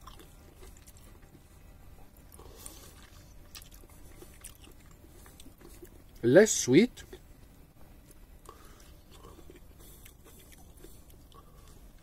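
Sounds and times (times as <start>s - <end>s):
faint chewing: 0.0s - 6.2s, 8.0s - 12.0s.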